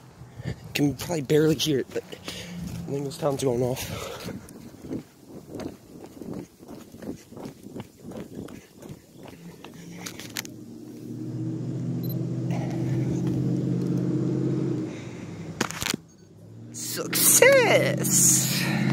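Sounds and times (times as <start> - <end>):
footsteps: 1.4 - 11.1
phone handling noise: 15.6 - 16.1.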